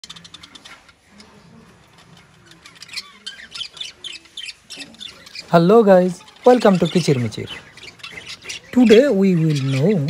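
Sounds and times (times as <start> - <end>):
budgerigars chirping and squawking: 0.0 - 10.0.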